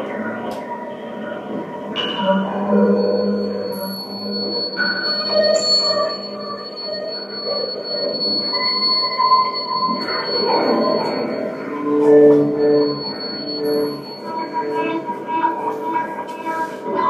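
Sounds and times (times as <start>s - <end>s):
shifting electronic tones: 0.0s - 17.0s
steady high-pitched tone: 0.0s - 17.0s
pulsing electronic notes: 1.0s - 17.0s.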